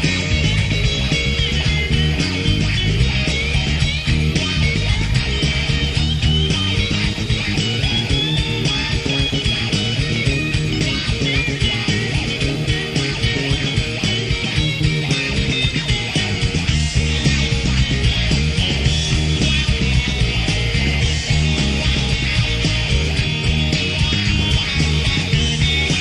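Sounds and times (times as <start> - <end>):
bass guitar: 0.0 - 26.0
rock guitar: 0.0 - 26.0.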